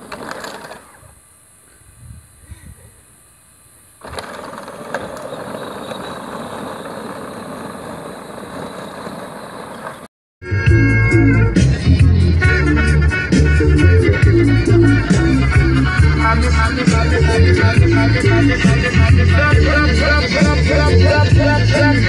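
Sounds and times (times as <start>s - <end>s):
toy ride-on car motor whirring: 0.0s - 1.0s, 4.0s - 10.0s
loud music with heavy beat: 10.4s - 22.0s.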